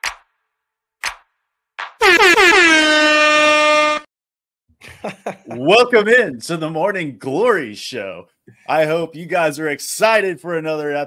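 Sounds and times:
air horn blast: 2.0 - 4.1.

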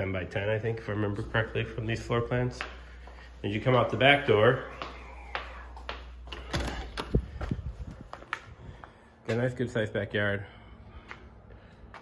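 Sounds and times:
footsteps: 0.0 - 9.6.

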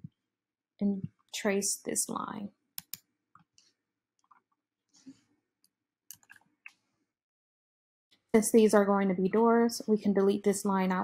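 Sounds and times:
computer mouse clicks: 2.8 - 4.4, 6.1 - 6.8.

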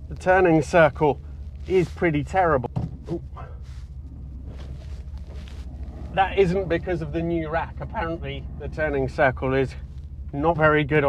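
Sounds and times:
car engine humming: 0.0 - 11.0.

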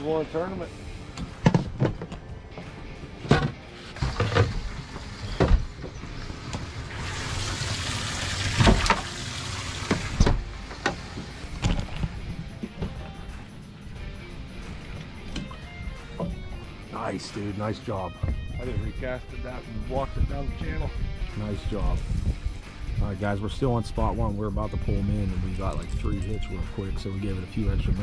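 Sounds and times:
background music: 0.0 - 28.0
handling knocks and thumps: 1.2 - 4.7, 9.9 - 13.2.

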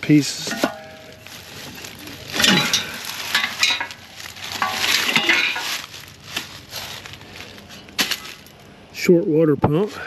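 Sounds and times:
dry leaves rustling: 0.1 - 8.7
metal parts clanking and scraping: 0.2 - 8.6
loud clanks with metallic ring: 0.4 - 1.3, 2.4 - 5.8.

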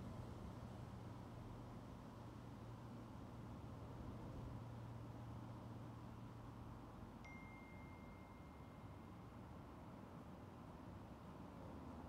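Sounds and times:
chime ringing: 7.3 - 8.6.

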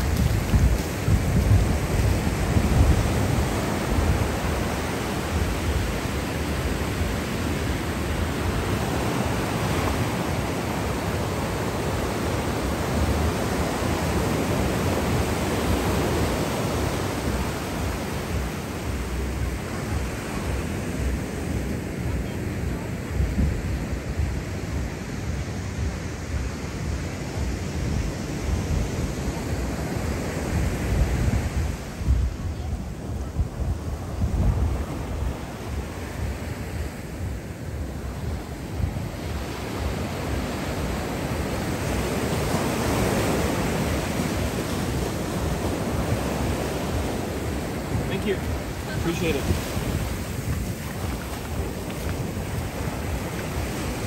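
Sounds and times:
surf breaking on sand: 0.0 - 54.0
wind rumble on microphone: 0.0 - 54.0.

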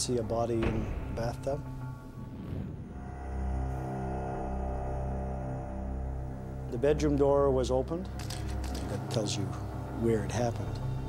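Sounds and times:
low drone music with held notes: 0.0 - 11.0.

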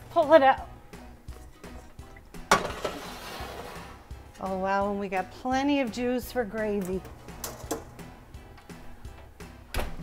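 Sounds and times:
metal pan clanking on grates: 2.5 - 3.5.

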